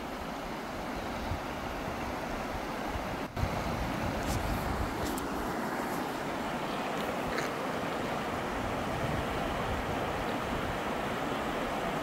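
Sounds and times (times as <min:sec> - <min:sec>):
river rushing over rocks: 0:00.0 - 0:12.0
wind rumbling on microphone: 0:01.2 - 0:05.4, 0:08.3 - 0:11.1.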